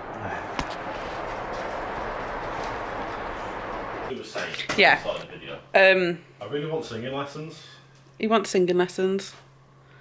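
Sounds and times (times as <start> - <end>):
rain falling: 0.0 - 5.3.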